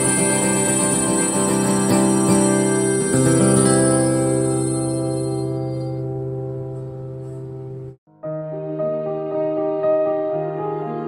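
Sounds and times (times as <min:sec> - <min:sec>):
acoustic guitar chord ringing: 0:00.0 - 0:07.9.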